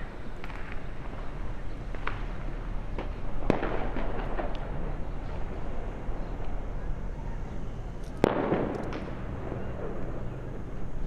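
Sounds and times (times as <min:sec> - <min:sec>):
dynamite blasts echoing: 0:00.0 - 0:06.4, 0:08.2 - 0:10.3
steady low rumble: 0:00.0 - 0:11.0.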